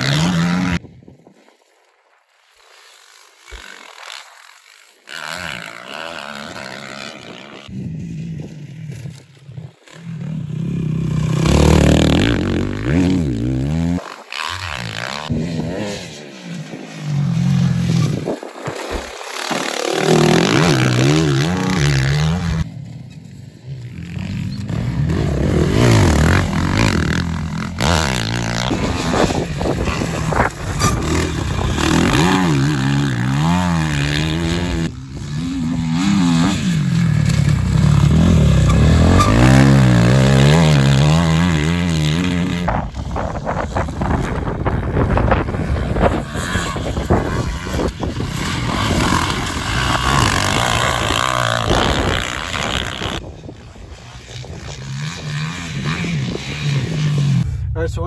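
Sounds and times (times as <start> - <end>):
dirt bike engines revving: 0.0 - 0.8, 2.8 - 58.0.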